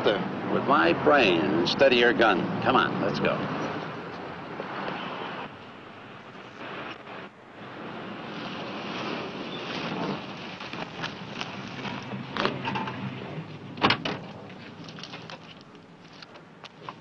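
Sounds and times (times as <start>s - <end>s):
car engine and road noise: 0.0s - 17.0s.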